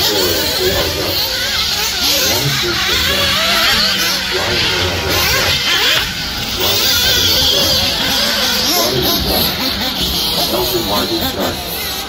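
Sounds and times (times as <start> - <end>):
indistinct voices talking: 0.0 - 12.0
radio-controlled buggies running: 0.0 - 12.0.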